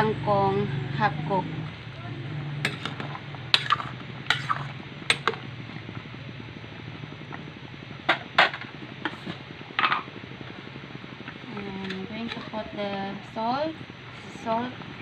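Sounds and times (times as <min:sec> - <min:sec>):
broth simmering: 0:00.0 - 0:15.0
metal utensil scraping metal pot: 0:02.6 - 0:05.3.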